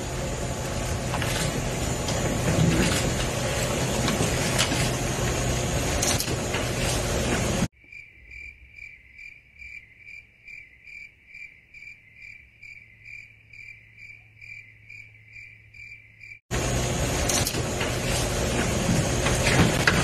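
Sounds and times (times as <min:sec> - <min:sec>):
cricket chirping: 0:07.7 - 0:16.4.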